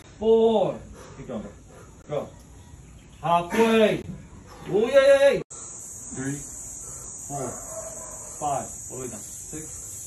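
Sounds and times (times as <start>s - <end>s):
steady high-pitched buzz: 5.5s - 10.0s.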